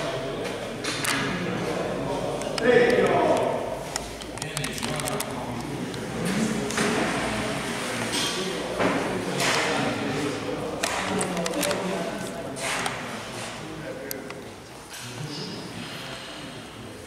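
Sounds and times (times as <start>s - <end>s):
voices chatting in a hall: 0.0s - 17.0s.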